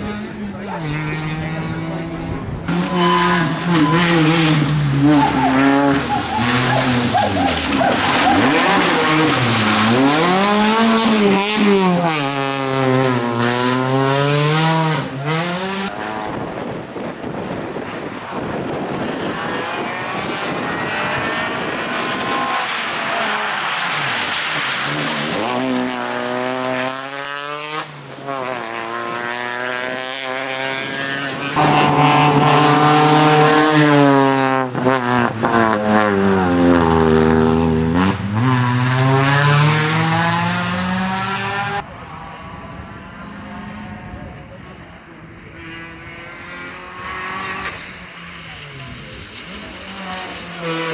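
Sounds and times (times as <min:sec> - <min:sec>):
rally car engine revving: 0:00.0 - 0:50.9
tyres throwing water: 0:04.5 - 0:11.3.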